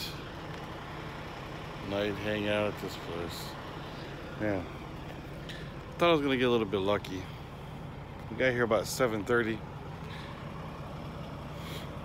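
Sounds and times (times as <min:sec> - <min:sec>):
truck engine idling: 0:00.0 - 0:12.0.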